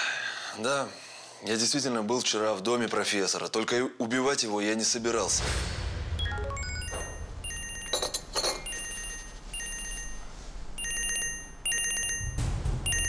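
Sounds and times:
mobile phone ringtone trilling: 0:06.4 - 0:13.0.

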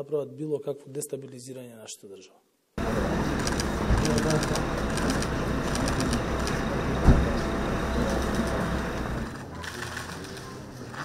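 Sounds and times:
car engine running: 0:02.8 - 0:09.4
thud: 0:07.0 - 0:07.4.

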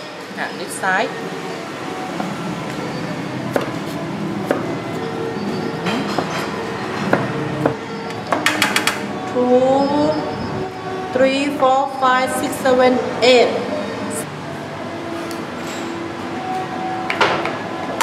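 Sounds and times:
music: 0:00.0 - 0:18.0.

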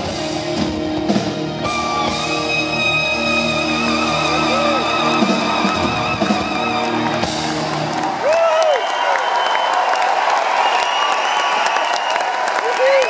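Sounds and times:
rock band closing chord: 0:00.0 - 0:08.2
audience applause and cheering: 0:01.4 - 0:13.0
shrill whistles: 0:01.6 - 0:07.8, 0:08.5 - 0:12.5.

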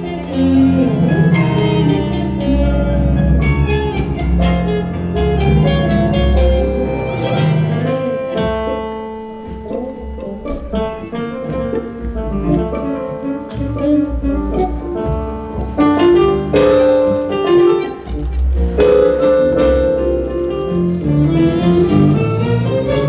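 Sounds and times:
double bass: 0:00.0 - 0:23.0
tango band playing: 0:00.0 - 0:23.0.

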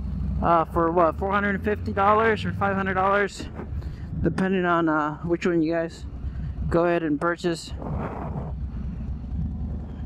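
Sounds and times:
motorcycle engine rumbling: 0:00.0 - 0:10.0
wind on microphone: 0:07.7 - 0:10.0.

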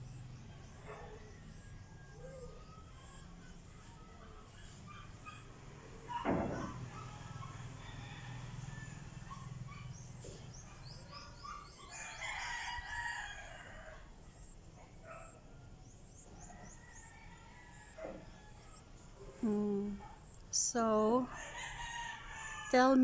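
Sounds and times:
rooster crowing: 0:06.1 - 0:09.5, 0:11.6 - 0:14.5, 0:16.4 - 0:18.9, 0:21.3 - 0:23.0
small birds chirping: 0:09.3 - 0:12.3.

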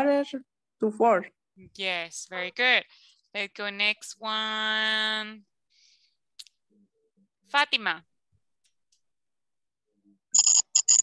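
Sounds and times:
woman speaking on a call: 0:01.6 - 0:05.5, 0:07.4 - 0:08.1.

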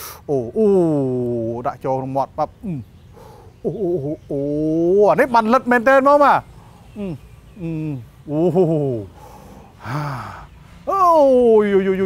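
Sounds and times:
person exclaiming: 0:00.3 - 0:01.5
breathy gasp: 0:09.1 - 0:10.6.

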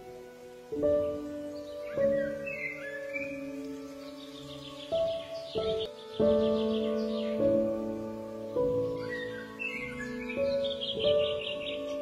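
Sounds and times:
slow soft instrumental music: 0:00.0 - 0:12.0
songbirds chirping and trilling: 0:00.0 - 0:12.0.

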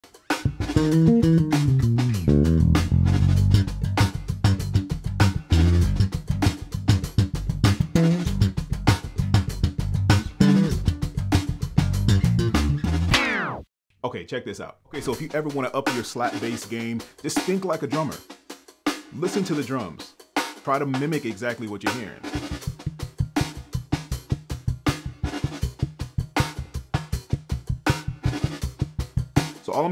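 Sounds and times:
drum track: 0:00.0 - 0:13.6, 0:14.9 - 0:29.9
slap bass funk groove: 0:00.4 - 0:13.2.

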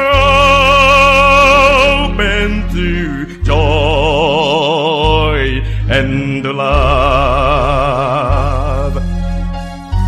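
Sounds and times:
man singing with vibrato: 0:00.0 - 0:09.2
low sustained bass notes: 0:00.0 - 0:10.0.

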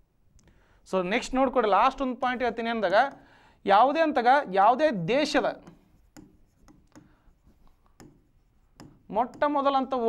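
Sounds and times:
pen tapping and scratching on screen: 0:02.8 - 0:03.3, 0:05.5 - 0:10.0.

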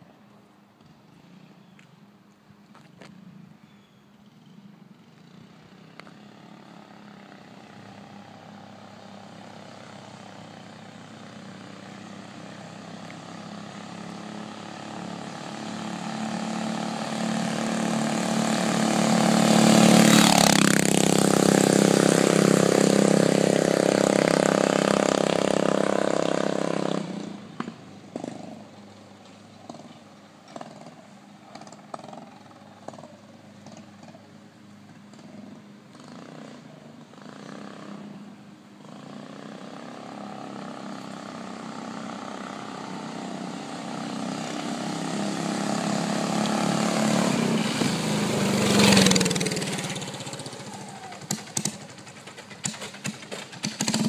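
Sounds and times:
motorbike engine passing: 0:04.2 - 0:54.0.

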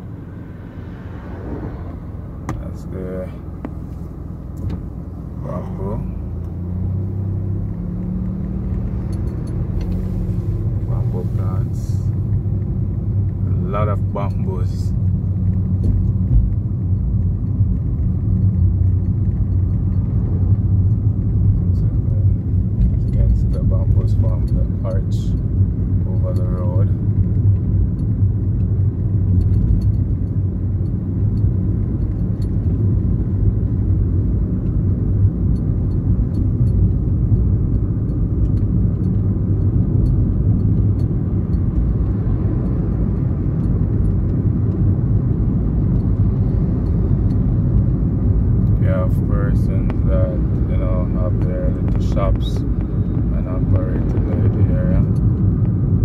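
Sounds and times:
car driving on paved road: 0:00.0 - 0:56.0.

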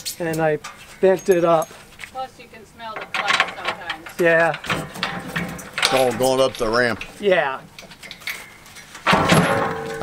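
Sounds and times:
metal ramp clanking on steel deck: 0:02.9 - 0:07.1, 0:08.1 - 0:10.0.

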